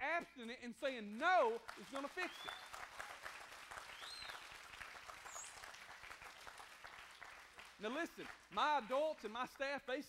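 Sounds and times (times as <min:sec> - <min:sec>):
audience applauding: 0:01.3 - 0:09.4.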